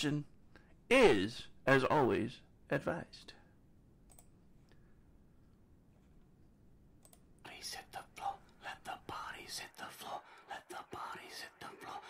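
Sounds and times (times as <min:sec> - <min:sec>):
person whispering: 0:07.4 - 0:12.0.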